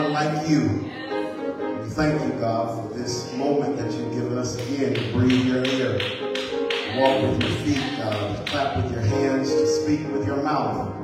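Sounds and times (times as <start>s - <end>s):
church music: 0.0s - 11.0s.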